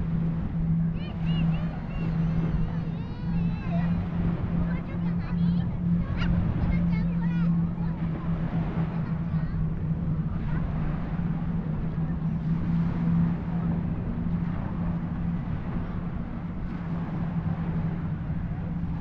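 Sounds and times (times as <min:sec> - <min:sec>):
low mechanical hum: 0:00.0 - 0:19.0
people and children talking: 0:00.7 - 0:12.4.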